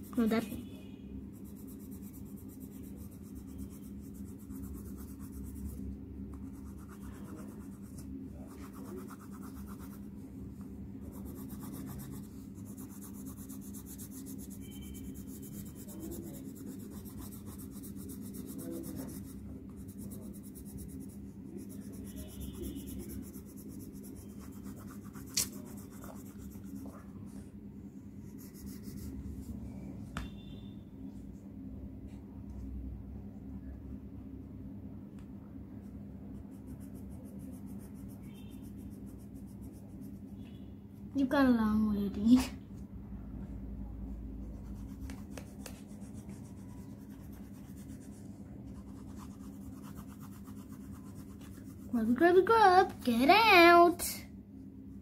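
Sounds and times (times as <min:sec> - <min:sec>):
steady low hum: 0:00.0 - 0:55.0
pencil scratching on paper: 0:01.3 - 0:10.1, 0:11.0 - 0:27.4, 0:28.2 - 0:29.4, 0:36.4 - 0:40.4, 0:44.4 - 0:52.6.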